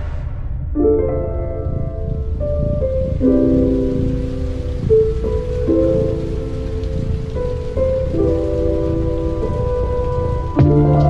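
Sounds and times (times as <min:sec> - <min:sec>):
rain-like hiss: 0:00.0 - 0:11.0
soft held music chords: 0:00.0 - 0:11.0.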